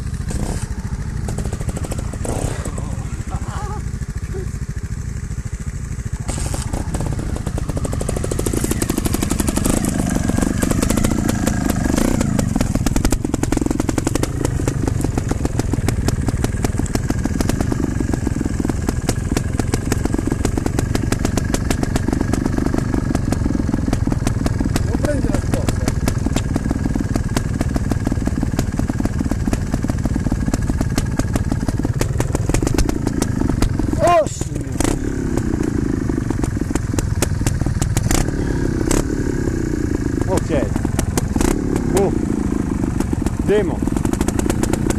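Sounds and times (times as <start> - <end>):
motorcycle engine idling and revving: 0.0 - 44.9.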